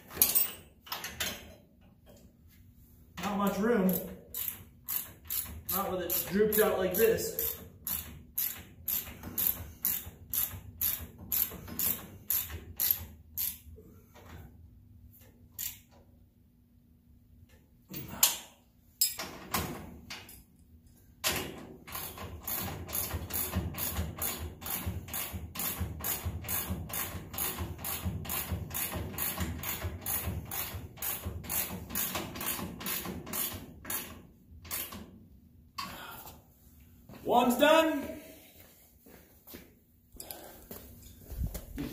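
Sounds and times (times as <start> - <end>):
ratchet wrench clicking: 3.9 - 13.6, 15.5 - 15.9.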